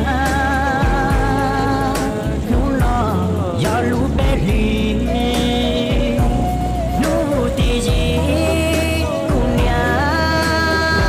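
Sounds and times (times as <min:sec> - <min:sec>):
backing track with low bass: 0:00.0 - 0:11.0
person singing a melody: 0:00.0 - 0:11.0.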